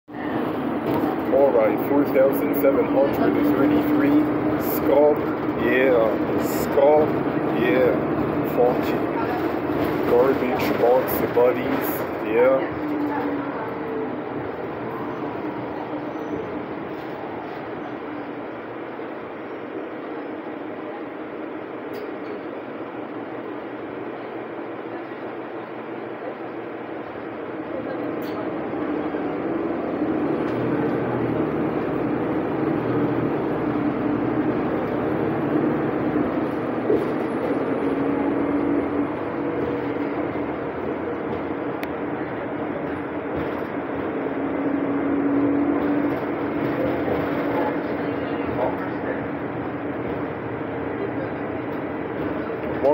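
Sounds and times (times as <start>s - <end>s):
diesel bus engine rumble: 0.1s - 52.9s
road noise: 0.1s - 52.9s.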